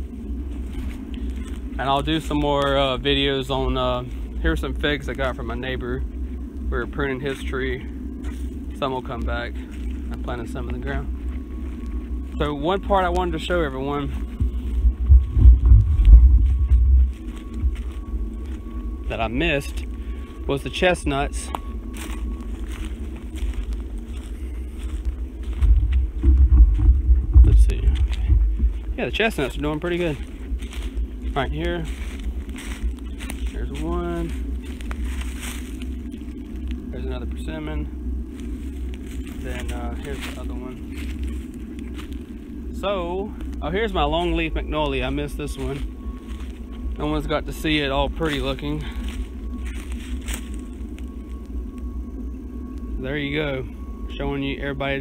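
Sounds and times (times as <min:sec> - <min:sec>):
footsteps on leaf litter: 0:00.0 - 0:55.0
low wind rumble on microphone: 0:00.0 - 0:55.0
wind buffeting microphone: 0:13.6 - 0:22.0, 0:22.6 - 0:37.0.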